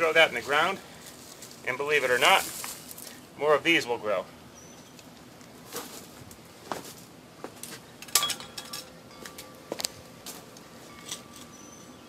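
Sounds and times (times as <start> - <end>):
trowel clinking and scraping soil: 10.8 - 11.8.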